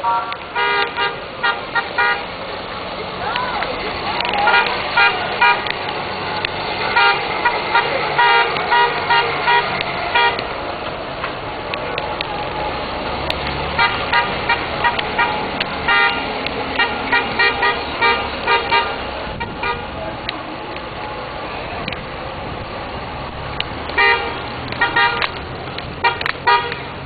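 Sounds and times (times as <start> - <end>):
low engine hum: 0.2 - 27.0
horn tooting short blasts: 13.8 - 16.2.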